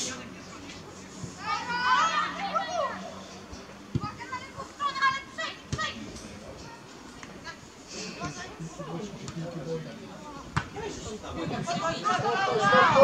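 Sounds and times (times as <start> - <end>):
children shouting: 1.4 - 3.2, 12.1 - 13.0.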